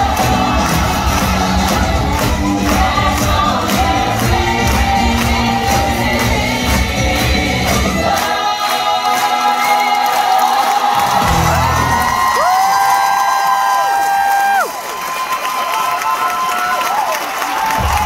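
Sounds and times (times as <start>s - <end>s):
cast and band playing live: 0.0s - 14.3s, 17.6s - 18.0s
audience cheering: 10.8s - 18.0s.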